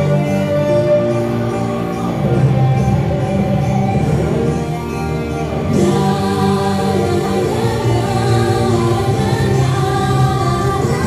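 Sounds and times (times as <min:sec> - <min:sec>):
guitar: 0:00.0 - 0:11.0
keyboard: 0:00.0 - 0:11.0
children singing gospel song: 0:05.7 - 0:11.0.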